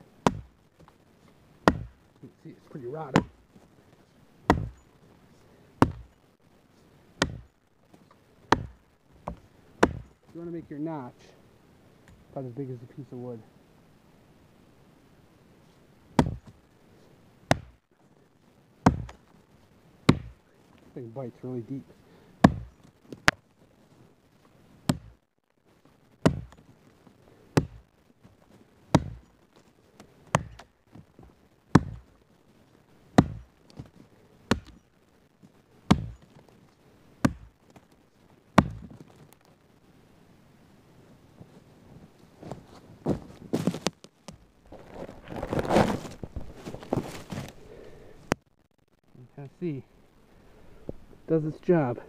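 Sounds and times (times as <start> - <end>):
axe chopping into log: 0.2 - 0.5, 1.6 - 2.0, 3.1 - 3.4, 4.5 - 4.8, 5.8 - 6.1, 7.2 - 7.5, 8.5 - 10.1, 16.2 - 16.6, 17.5 - 17.8, 18.8 - 19.2, 20.1 - 20.4, 22.4 - 23.4, 24.9 - 25.1, 26.2 - 26.6, 27.6 - 27.8, 28.9 - 29.2, 30.3 - 30.7, 31.7 - 32.0, 33.2 - 33.5, 34.5 - 34.8, 35.9 - 36.2, 37.2 - 37.5, 38.6 - 39.0
rustling and crackling: 15.6 - 40.0, 40.8 - 52.0.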